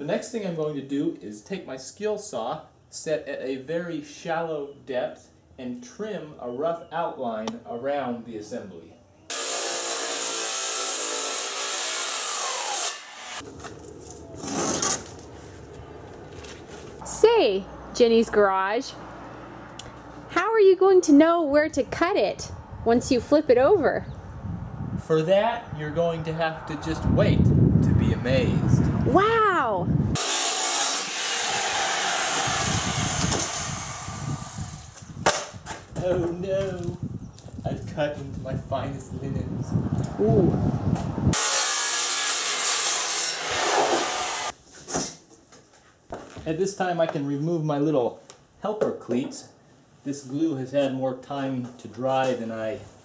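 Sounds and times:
circular saw cutting plywood: 9.3s - 13.5s, 14.4s - 15.2s, 30.2s - 35.1s, 41.3s - 44.6s
wood scraping: 12.2s - 17.0s
sharp knock: 35.2s - 35.8s.

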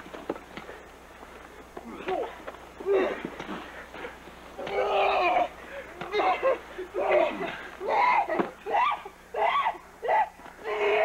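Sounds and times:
people crying and wailing: 1.9s - 11.0s.

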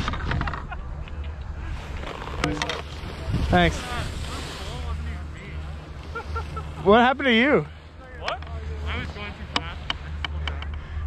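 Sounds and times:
wind buffeting microphone: 0.0s - 6.0s
skis scraping on snow: 1.5s - 10.3s.

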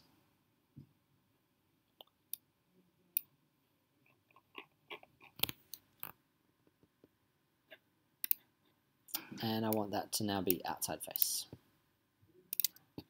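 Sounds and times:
mouse and keyboard clicks: 4.3s - 6.1s, 12.5s - 12.8s.

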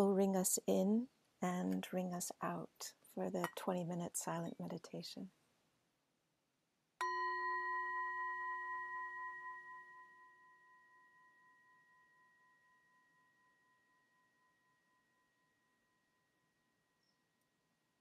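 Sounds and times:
singing bowl ringing: 7.0s - 16.4s.

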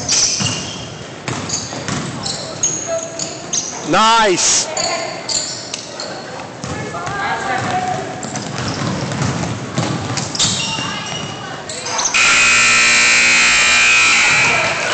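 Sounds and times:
voices echoing in gym: 0.0s - 14.9s
basketball bouncing on hardwood floor: 1.2s - 2.2s, 8.4s - 10.2s
loud steady buzzer tone: 12.1s - 14.9s.

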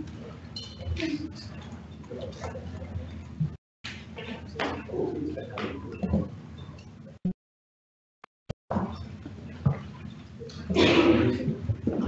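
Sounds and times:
soft murmured voices: 4.1s - 6.3s, 8.7s - 12.0s.

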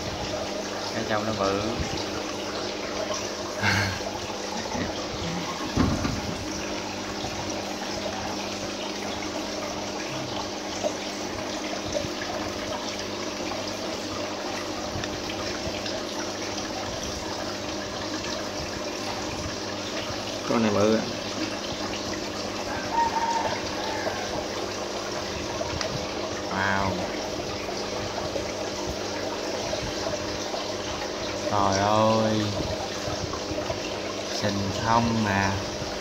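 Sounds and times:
aquarium filter water trickling: 0.0s - 36.0s
dull bump: 5.6s - 6.5s.

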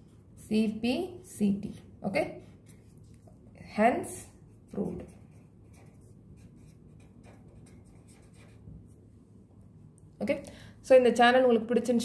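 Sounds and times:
pen scratching on paper: 4.5s - 8.8s.

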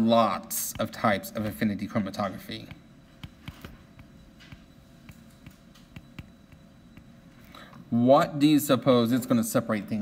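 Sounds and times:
stylus tapping on tablet screen: 2.6s - 7.2s.

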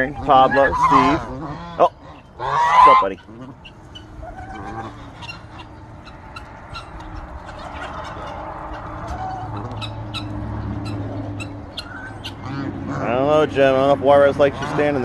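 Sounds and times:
turkey calling: 0.0s - 13.3s.

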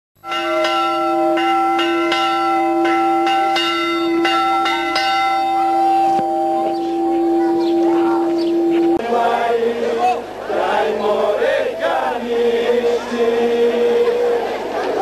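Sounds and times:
church bell ringing: 0.2s - 9.0s.

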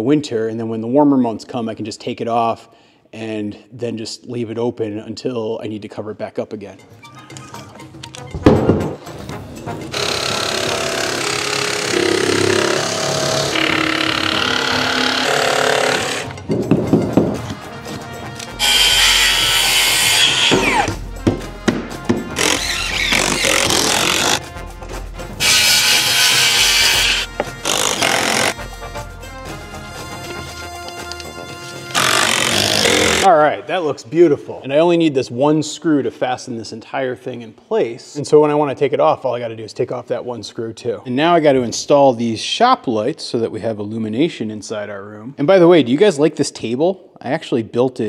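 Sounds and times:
background music: 6.0s - 34.4s
circular saw cutting wood: 9.9s - 16.4s, 18.4s - 21.0s, 22.3s - 24.4s, 25.4s - 28.6s, 31.9s - 33.3s.

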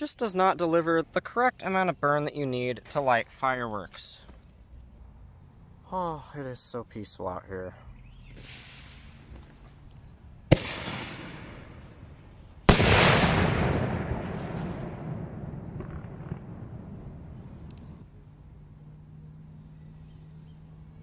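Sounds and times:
firework bursts echoing: 10.5s - 12.1s, 12.7s - 18.0s.

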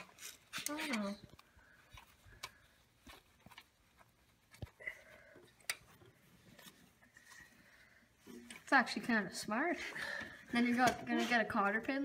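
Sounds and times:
faint clicks and rustles: 0.0s - 9.2s.

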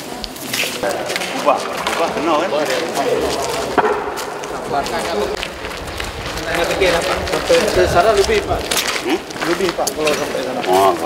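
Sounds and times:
men's voices talking: 0.5s - 11.0s.

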